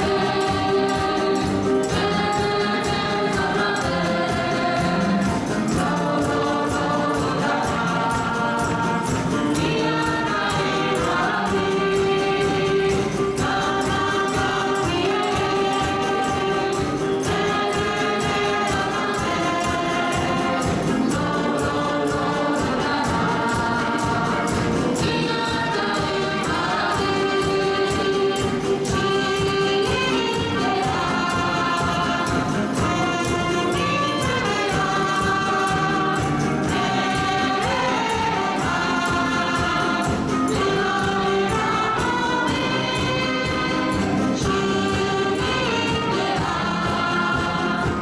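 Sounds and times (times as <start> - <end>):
choir singing: 0.0 - 48.0
instrumental ensemble: 0.0 - 48.0
percussion beat: 0.0 - 48.0.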